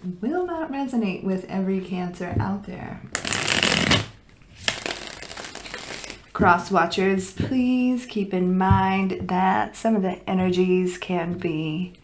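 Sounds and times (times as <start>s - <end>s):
cards being shuffled: 3.1s - 6.3s.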